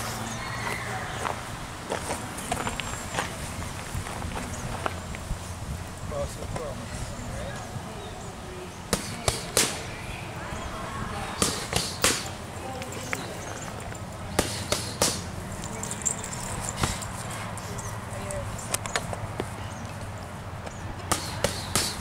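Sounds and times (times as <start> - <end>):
boxing gloves smacking focus mitts: 14.4 - 15.2, 21.0 - 22.0.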